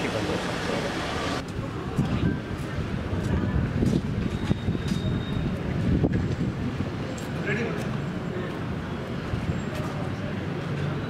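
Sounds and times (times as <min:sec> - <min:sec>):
faint voices: 0:00.0 - 0:11.0
road traffic rumble: 0:00.0 - 0:11.0.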